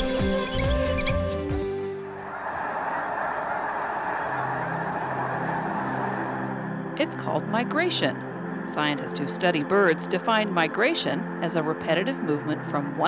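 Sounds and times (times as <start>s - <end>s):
theme music: 1.2s - 13.0s
flock of geese honking: 2.2s - 7.4s.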